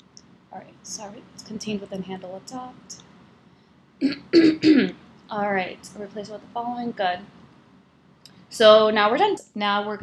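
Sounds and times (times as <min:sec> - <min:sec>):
woman clearing her throat: 0:04.0 - 0:05.0.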